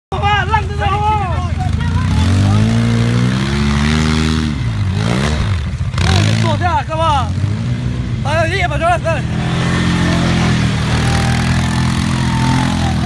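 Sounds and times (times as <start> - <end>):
off-road vehicle engine revving: 0.4 - 13.0.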